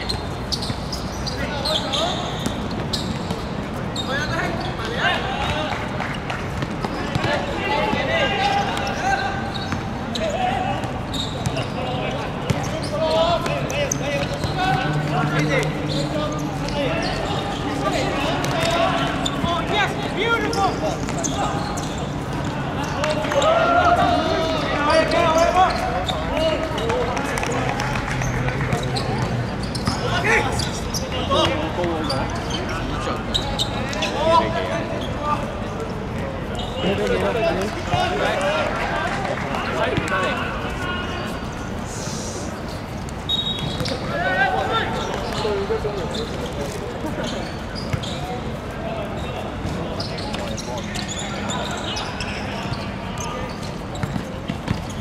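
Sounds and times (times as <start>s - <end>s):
players calling and shouting: 0.0s - 55.0s.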